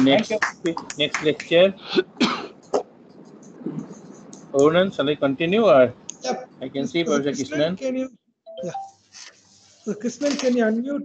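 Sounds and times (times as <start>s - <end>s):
person coughing: 1.9s - 2.8s.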